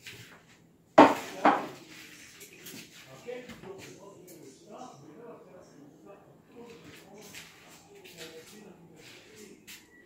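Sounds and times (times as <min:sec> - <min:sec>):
kitchenware clattering: 0:01.0 - 0:02.9
quiet handling noises: 0:06.5 - 0:10.0.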